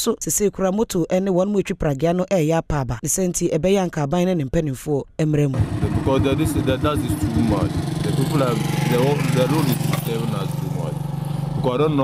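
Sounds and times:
people talking: 0:00.0 - 0:11.0, 0:11.6 - 0:12.0
motorcycle engine running: 0:05.5 - 0:12.0.

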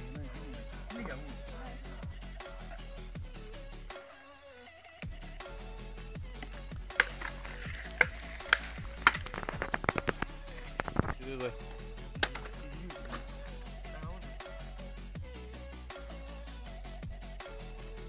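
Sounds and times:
background music: 0:00.0 - 0:18.0
machete striking bamboo: 0:06.9 - 0:11.2, 0:12.2 - 0:12.6.

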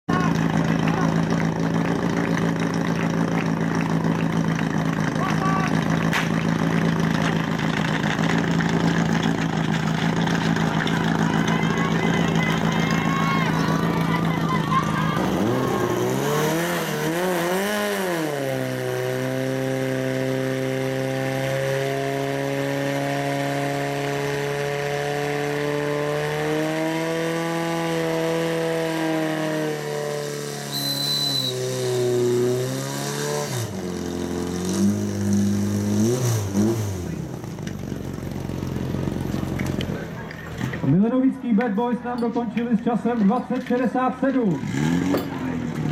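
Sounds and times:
pump engine revving: 0:00.1 - 0:41.0, 0:44.5 - 0:45.9.

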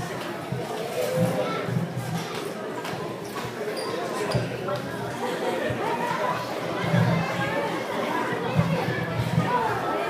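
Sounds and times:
people chatting in echoing hall: 0:00.0 - 0:10.0.

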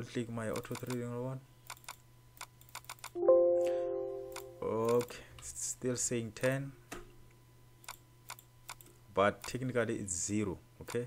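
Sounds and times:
computer alert chime: 0:03.2 - 0:04.8.

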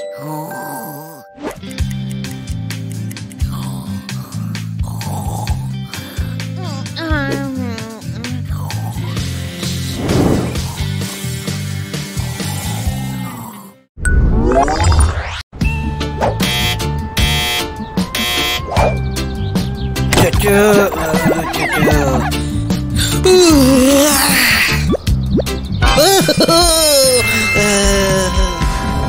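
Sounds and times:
background music: 0:00.0 - 0:13.5, 0:15.6 - 0:29.0
cartoon snore sound effect: 0:00.1 - 0:01.4, 0:12.2 - 0:13.8.

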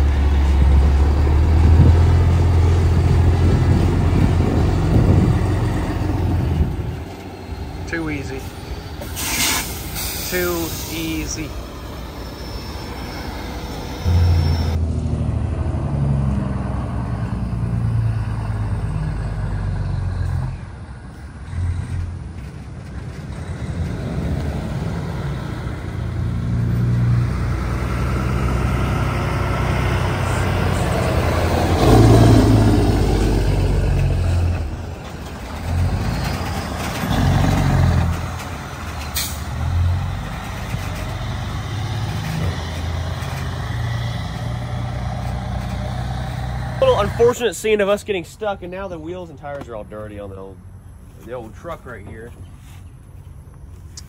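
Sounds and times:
wheel loader engine under load: 0:00.0 - 0:47.8
semi truck diesel engine: 0:00.0 - 0:54.0.

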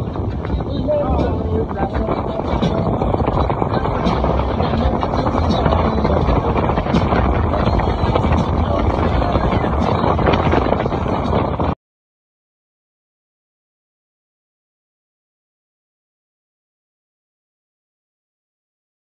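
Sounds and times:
boat engine running: 0:00.0 - 0:11.8
wind buffeting microphone: 0:00.0 - 0:11.8.

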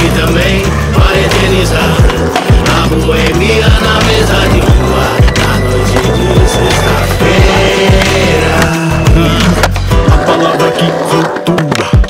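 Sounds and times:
longboard wheels rolling on asphalt: 0:00.0 - 0:08.6
rap beat music: 0:00.0 - 0:12.0.

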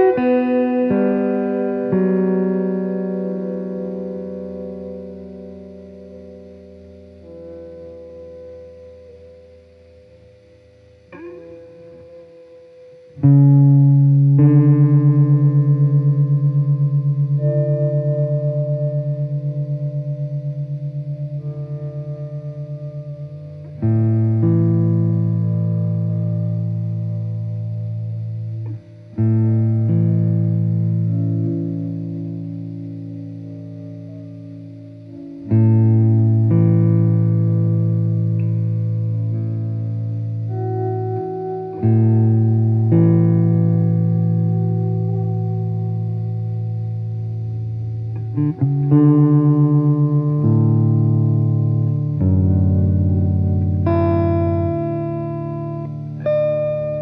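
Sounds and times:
electric guitar playing slow chords: 0:00.0 - 0:57.0.

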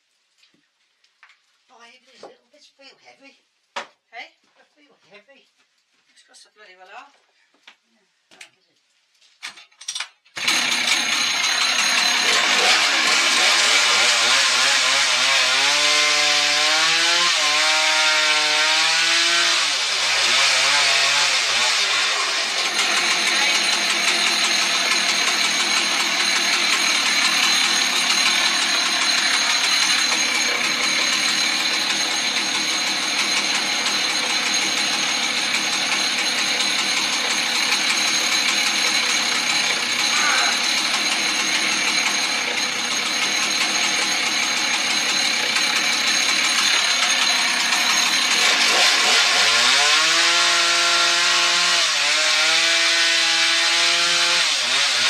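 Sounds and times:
chainsaw idling: 0:10.4 - 0:55.0.

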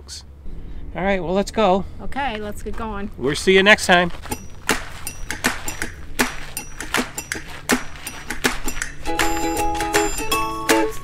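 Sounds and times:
low steady rumble: 0:00.0 - 0:09.2
footsteps on gravel path: 0:02.3 - 0:10.2.

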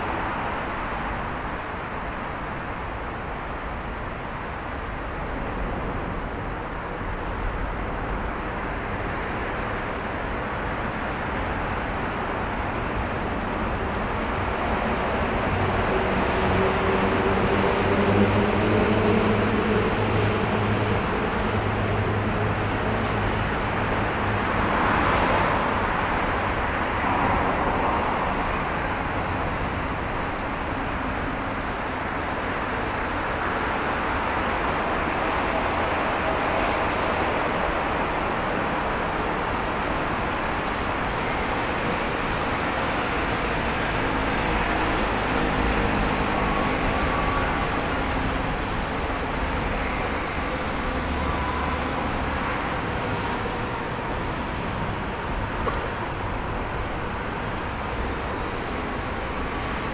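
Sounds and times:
passing road traffic: 0:00.0 - 0:59.9.

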